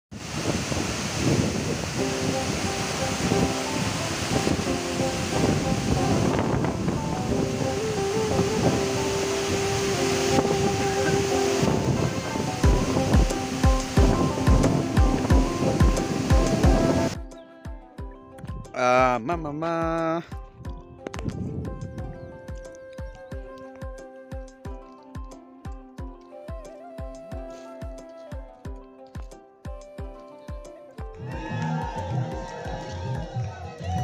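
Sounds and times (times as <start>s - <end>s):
waterfall rushing: 0.2s - 17.2s
sustained melodic notes: 1.8s - 31.2s
low drum beat: 10.0s - 24.9s.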